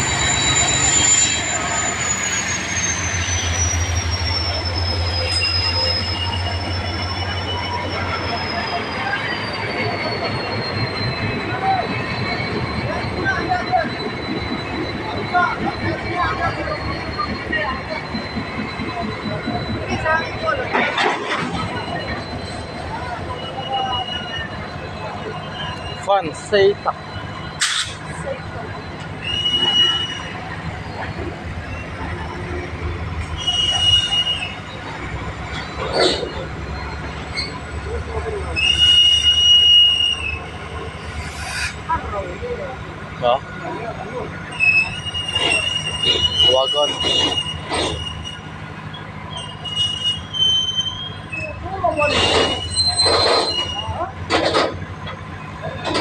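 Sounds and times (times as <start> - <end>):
freight train rumbling: 0.0 - 56.0
high-pitched wheel squeal: 0.0 - 56.0.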